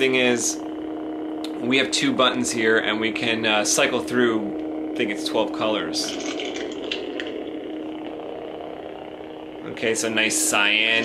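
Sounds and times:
crackly electric hum: 0:00.0 - 0:11.0.

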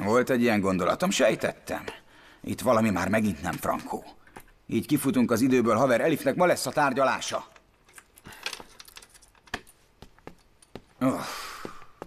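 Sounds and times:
small objects clicking and clinking: 0:07.8 - 0:09.8.

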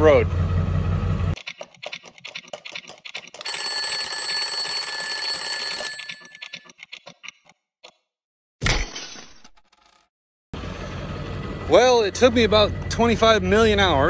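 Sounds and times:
alarm clock bell ringing: 0:03.4 - 0:06.6
alarm clock ticking: 0:03.4 - 0:06.7.

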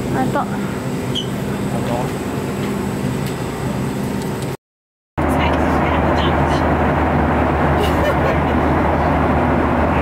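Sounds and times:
jet airliner cabin noise: 0:00.0 - 0:04.6, 0:05.2 - 0:10.0.

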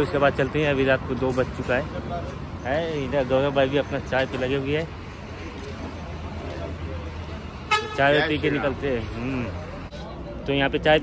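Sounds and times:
low rumble of vehicles: 0:00.0 - 0:11.0
vehicle horn toot: 0:07.7 - 0:08.2.

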